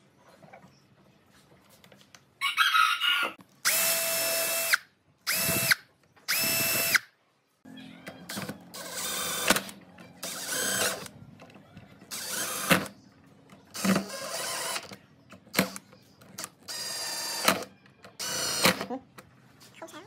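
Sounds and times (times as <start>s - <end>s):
cordless drill whining: 3.6s - 7.0s, 10.2s - 11.1s, 12.1s - 12.9s, 16.4s - 18.8s.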